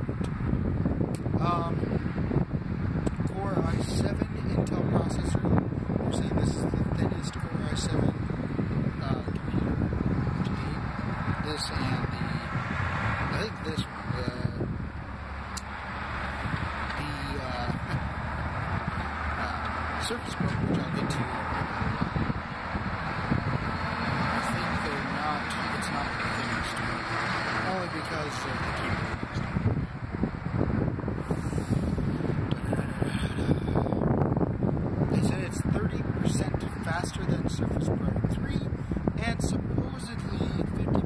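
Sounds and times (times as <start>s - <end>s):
low outdoor rumble: 0.0s - 41.0s
wind buffeting microphone: 0.0s - 41.0s.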